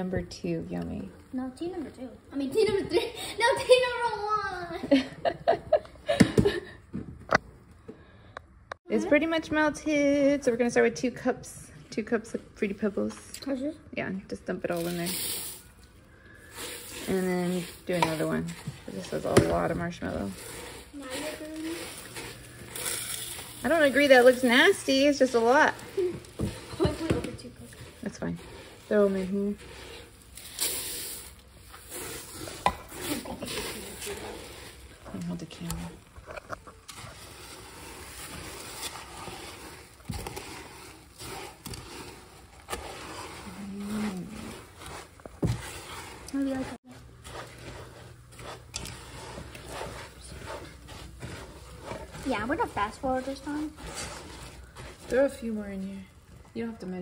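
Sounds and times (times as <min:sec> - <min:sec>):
spatula stirring cereal in saucepan: 0:11.9 - 0:57.0.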